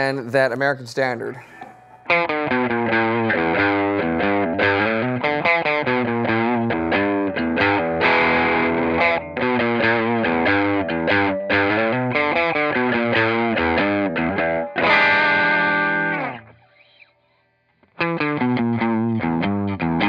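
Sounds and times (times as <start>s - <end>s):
overdriven electric guitar notes: 1.6s - 17.0s, 17.8s - 20.0s
strummed guitar chord: 2.0s - 16.5s.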